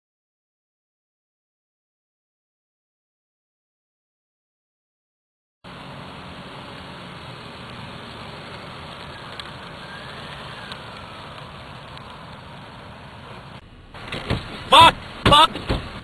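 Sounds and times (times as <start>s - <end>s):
distant car driving: 5.6s - 16.0s
steady hiss: 5.7s - 15.2s.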